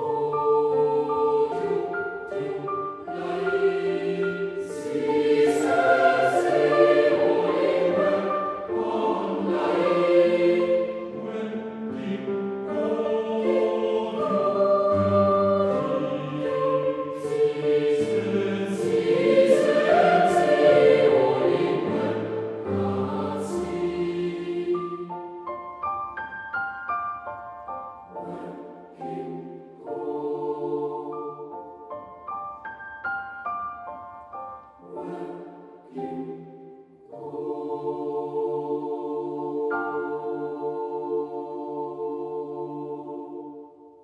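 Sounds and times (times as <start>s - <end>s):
boys' choir singing: 0.0s - 25.4s, 28.1s - 31.6s, 34.8s - 43.8s.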